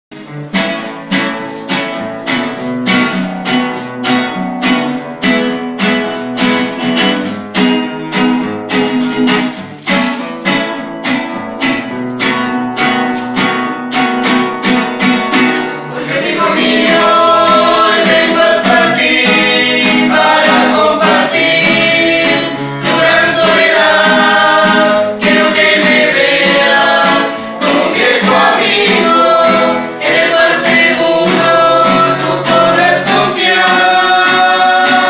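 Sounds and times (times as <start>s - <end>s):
acoustic guitars strumming: 0.1s - 35.0s.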